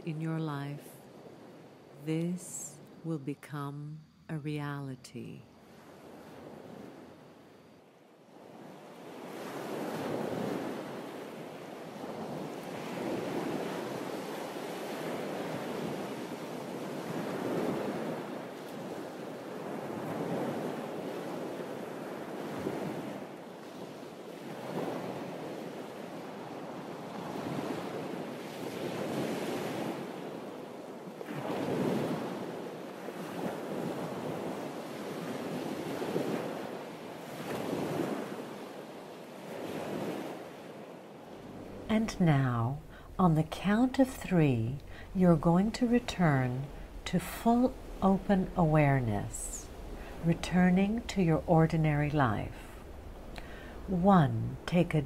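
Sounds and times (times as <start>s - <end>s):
wind: 0.0s - 55.0s
sea waves washing against rocks: 47.6s - 53.9s.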